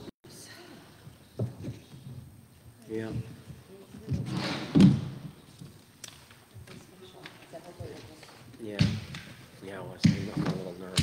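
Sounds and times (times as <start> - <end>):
indistinct conversation echoing: 0.3 - 11.0.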